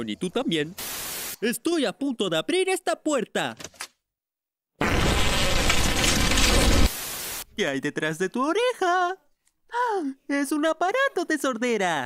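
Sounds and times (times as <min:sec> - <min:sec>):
cartoon fart sound effect: 0:04.8 - 0:06.9.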